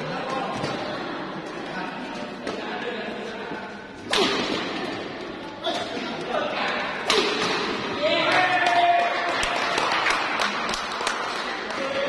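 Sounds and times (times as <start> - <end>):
racket hitting shuttlecock: 4.0 - 5.0, 7.0 - 7.9.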